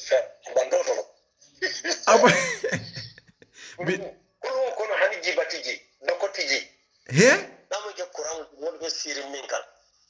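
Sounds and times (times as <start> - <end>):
man talking: 2.1 - 3.0, 3.6 - 4.1, 7.1 - 7.6.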